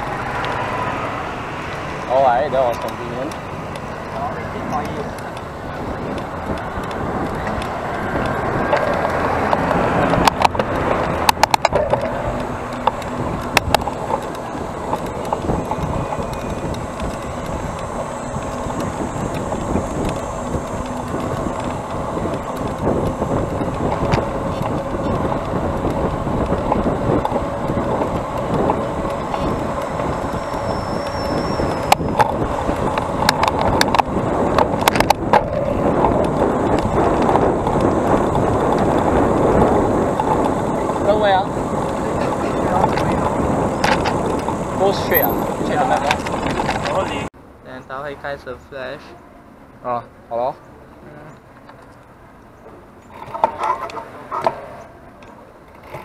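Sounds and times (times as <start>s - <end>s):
bicycle rolling on paved path: 0.0s - 56.0s
passing car traffic: 0.0s - 56.0s.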